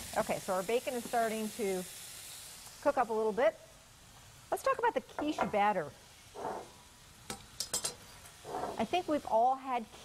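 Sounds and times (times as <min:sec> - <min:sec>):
bacon sizzling in a frying pan: 0:00.0 - 0:10.0.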